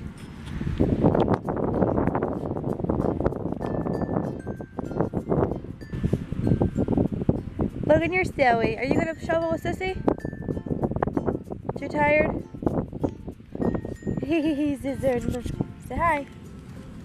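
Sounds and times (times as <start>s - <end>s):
strong wind buffeting microphone: 0.0s - 17.0s.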